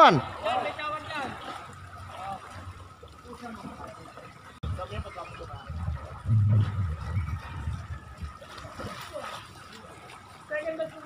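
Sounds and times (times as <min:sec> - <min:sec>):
wind buffeting microphone: 0:04.6 - 0:09.1.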